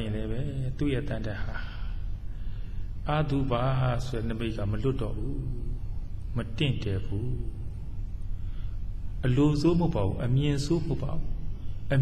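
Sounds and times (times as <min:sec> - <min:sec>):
steady low hum: 0:00.0 - 0:12.0
man chanting: 0:03.0 - 0:05.8, 0:06.4 - 0:07.8.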